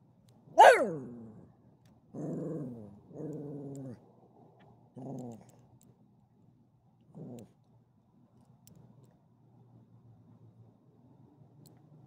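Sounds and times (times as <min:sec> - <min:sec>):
dog growling: 0:00.6 - 0:01.4, 0:02.2 - 0:04.0, 0:05.0 - 0:05.5, 0:07.2 - 0:07.5.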